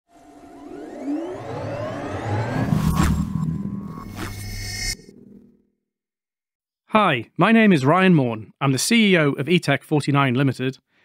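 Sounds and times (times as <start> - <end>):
steady held synth tone: 0.1 - 5.8
synthesized rising sweep: 0.1 - 5.8.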